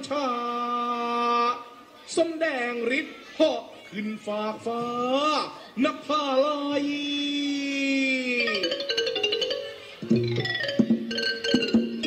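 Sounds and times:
music with quick struck notes: 8.9s - 12.0s.

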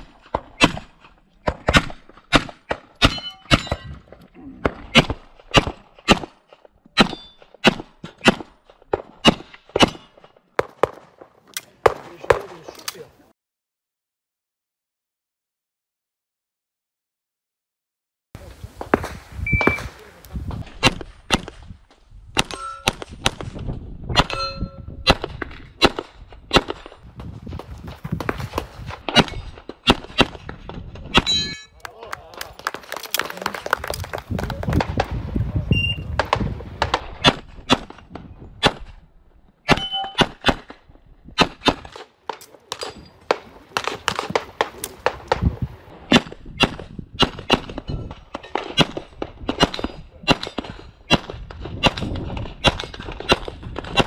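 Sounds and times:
steel targets ringing: 3.0s - 3.9s.

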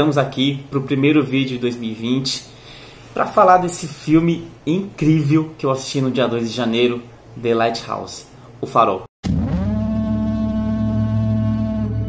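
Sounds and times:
deep droning tone: 9.2s - 12.0s
low rumble: 9.2s - 12.0s.

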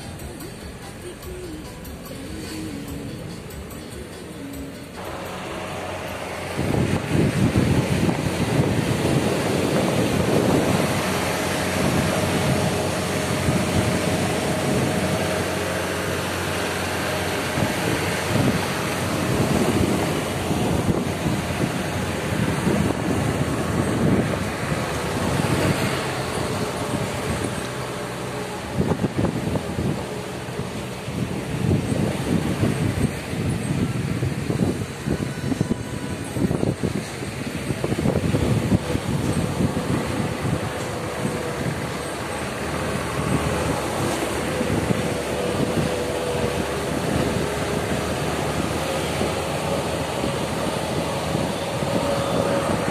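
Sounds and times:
motorcycle engine and road noise: 0.0s - 52.9s
wind buffeting microphone: 5.6s - 52.9s.

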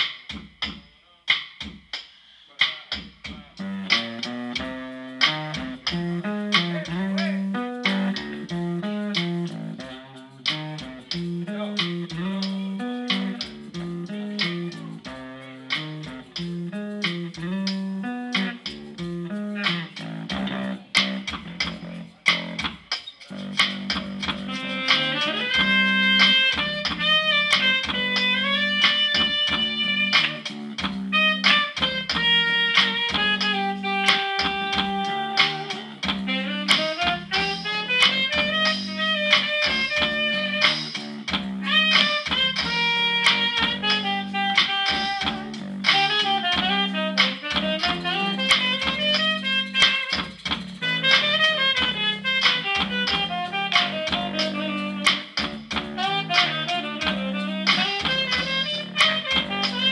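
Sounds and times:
percussive beat: 0.0s - 59.9s
bass guitar riff: 3.6s - 22.7s, 23.3s - 59.9s
held melody notes: 3.6s - 59.9s.

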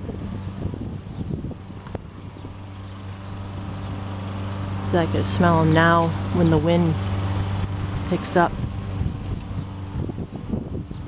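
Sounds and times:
motor humming: 0.0s - 11.0s
wind noise on microphone: 0.0s - 11.0s.

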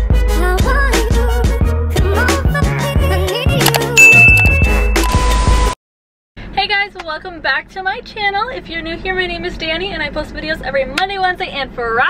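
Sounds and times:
notification bell chime: 4.0s - 5.3s
upbeat music with steady beat: 4.0s - 5.4s.

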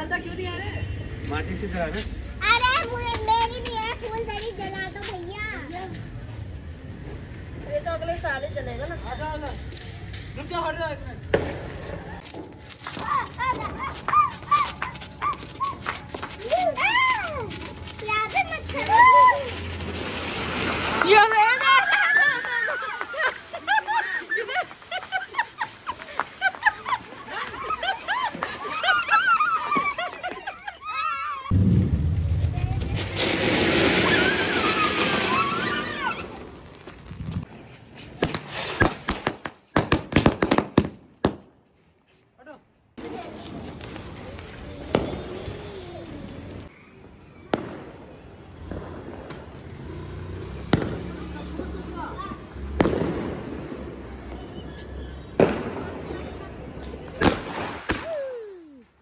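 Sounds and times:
firework crackling pops: 9.8s - 23.4s, 31.5s - 41.6s, 43.0s - 46.7s, 47.5s - 51.7s, 52.6s - 54.5s, 55.3s - 58.4s
firework fountain hissing: 11.5s - 28.0s, 32.0s - 37.5s, 43.0s - 46.7s
drawn-out rising and falling cry: 27.3s - 36.6s.

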